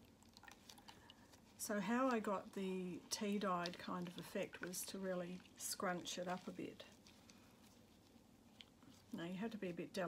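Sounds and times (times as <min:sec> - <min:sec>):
wet paper filter squeezed: 0:00.0 - 0:09.2.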